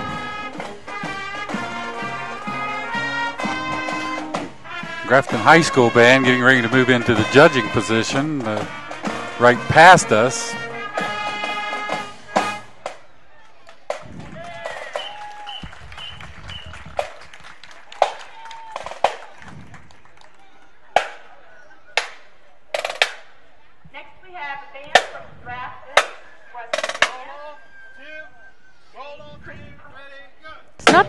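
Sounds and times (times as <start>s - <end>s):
band playing tune: 0.0s - 13.0s, 26.7s - 27.9s
crowd murmuring: 0.0s - 31.0s.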